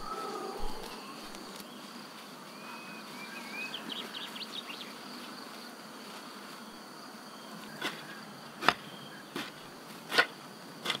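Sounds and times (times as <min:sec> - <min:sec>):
insects chirring: 0:00.0 - 0:11.0
hand hoe chopping into soil: 0:07.8 - 0:11.0.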